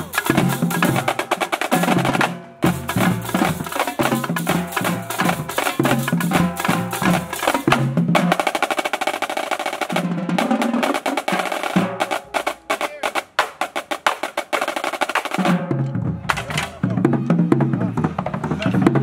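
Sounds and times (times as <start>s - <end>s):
marching drumline: 0.0s - 19.0s.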